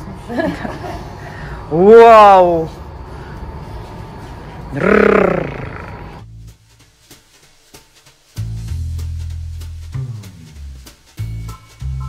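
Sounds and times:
woman growling roar: 0:04.7 - 0:06.1.

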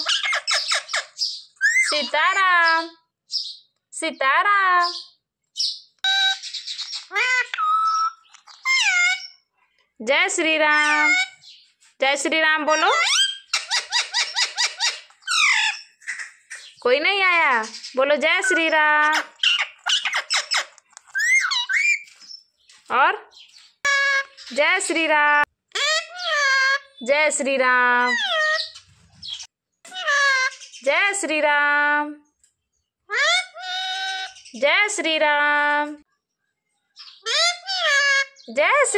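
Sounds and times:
parakeet mimicking speech: 0:00.0 - 0:03.0, 0:04.2 - 0:05.1, 0:06.1 - 0:09.4, 0:10.2 - 0:11.4, 0:12.5 - 0:15.8, 0:17.0 - 0:22.0, 0:23.9 - 0:28.8, 0:29.9 - 0:32.0, 0:33.1 - 0:35.7, 0:37.2 - 0:38.9
parakeet calls and squawks: 0:00.0 - 0:03.7, 0:04.8 - 0:09.5, 0:10.7 - 0:11.7, 0:12.7 - 0:25.0, 0:25.7 - 0:27.1, 0:28.0 - 0:31.2, 0:33.1 - 0:34.8, 0:37.0 - 0:38.9.

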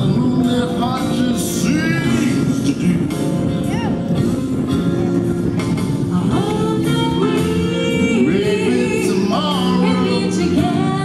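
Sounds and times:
person singing with sliding notes: 0:00.0 - 0:03.8, 0:05.7 - 0:11.0
amplified musical accompaniment: 0:00.0 - 0:11.0.

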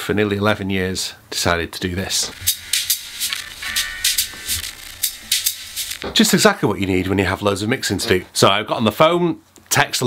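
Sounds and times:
faint music: 0:02.0 - 0:08.3
speaker crackling distortion: 0:02.1 - 0:07.2.

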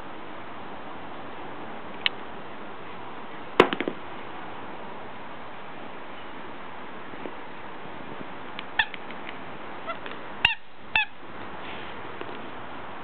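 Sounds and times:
dog toy squeaking: 0:08.7 - 0:09.0, 0:09.8 - 0:11.2.

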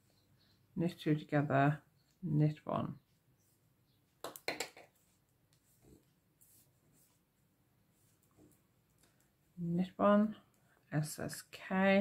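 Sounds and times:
knitting needles clicking: 0:04.2 - 0:05.6.

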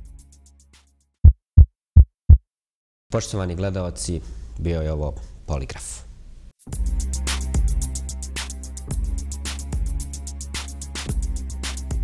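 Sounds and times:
heartbeat thumps: 0:01.2 - 0:02.4.

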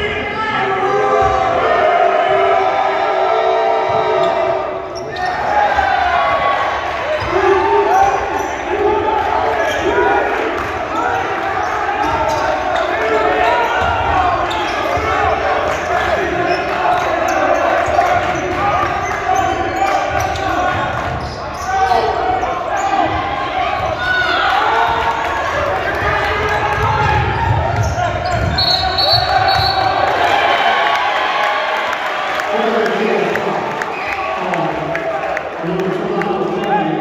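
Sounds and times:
voices calling out in a gym: 0:00.0 - 0:37.0.

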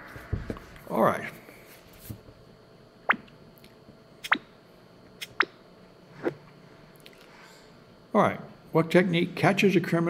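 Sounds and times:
electronic water-drop blips: 0:04.2 - 0:04.5.

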